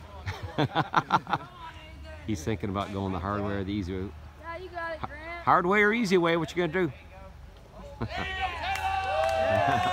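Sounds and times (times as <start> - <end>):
man laughing: 0.2 - 1.5.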